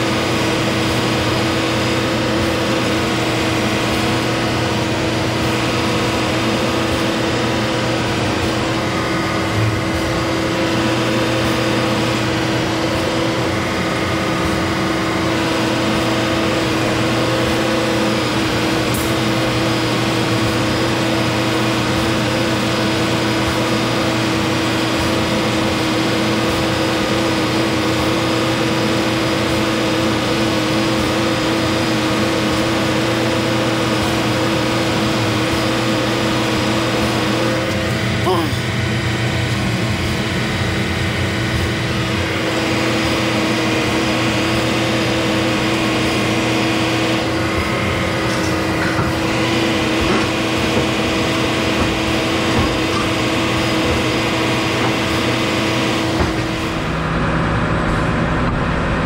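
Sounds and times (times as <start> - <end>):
diesel engine running with whine: 0.0 - 59.0.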